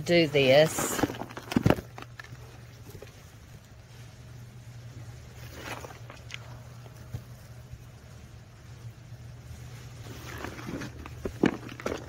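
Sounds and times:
knocks and rustles of compost: 0:00.0 - 0:04.0, 0:05.0 - 0:07.9, 0:09.7 - 0:12.0
steady low hum: 0:00.0 - 0:12.0.

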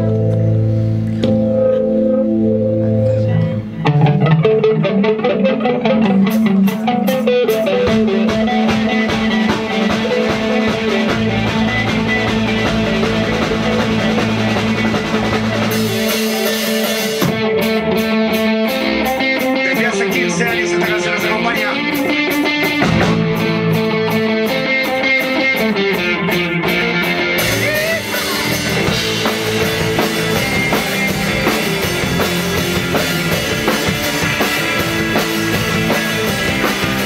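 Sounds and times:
bass guitar: 0:00.0 - 0:37.0
drum kit: 0:00.0 - 0:37.0
electric guitar: 0:00.0 - 0:37.0.

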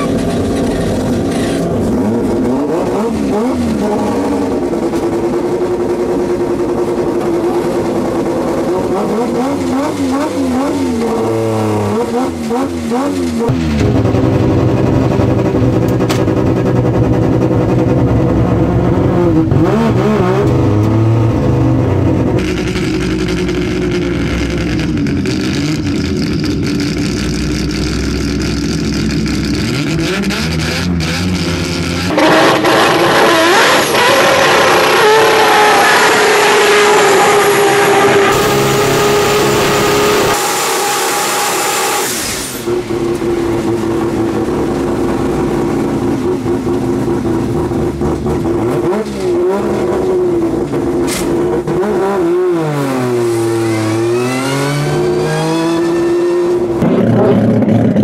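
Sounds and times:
rotary engine revving loudly: 0:00.0 - 0:06.2, 0:08.6 - 0:58.0.

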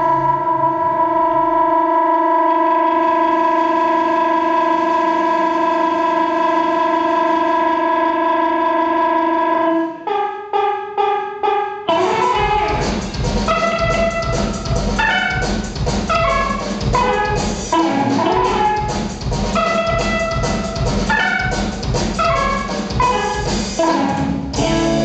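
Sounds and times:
rock band sustained note: 0:00.0 - 0:08.8, 0:11.9 - 0:25.0
full band with drums: 0:11.9 - 0:25.0.

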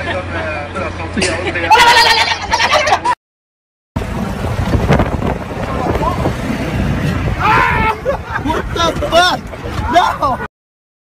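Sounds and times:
low rumble: 0:04.0 - 0:09.9.

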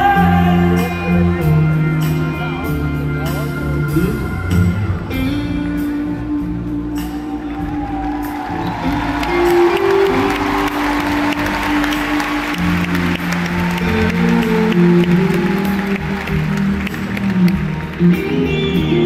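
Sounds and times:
live band music: 0:00.0 - 0:19.0
crowd applauding: 0:07.2 - 0:19.0.

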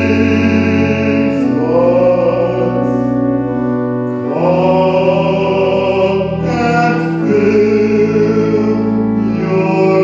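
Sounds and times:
man singing a hymn: 0:00.0 - 0:10.0
piano accompaniment: 0:00.0 - 0:10.0.

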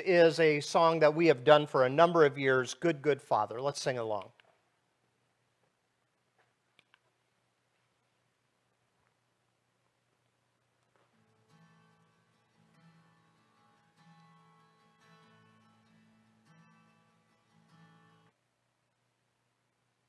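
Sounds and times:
faint acoustic guitar strumming: 0:11.1 - 0:18.3.

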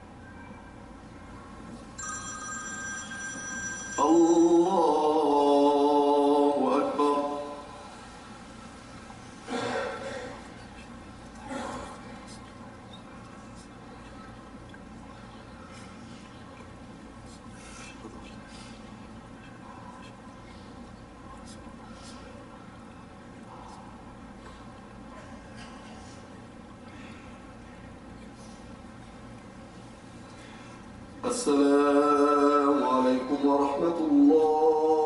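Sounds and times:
low room hum: 0:00.0 - 0:35.0
electronic ringing tone: 0:02.0 - 0:04.8.

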